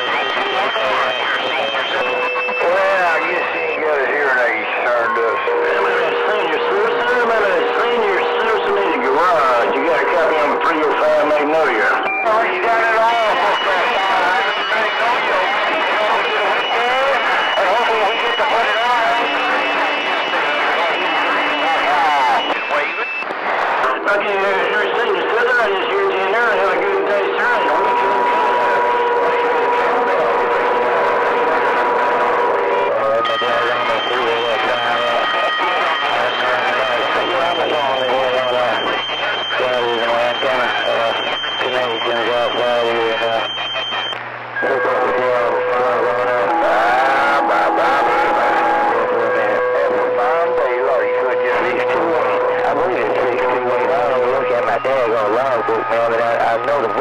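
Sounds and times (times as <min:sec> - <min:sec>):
garbled radio voices: 0:00.0 - 0:57.0
radio carrier whistles: 0:00.0 - 0:57.0.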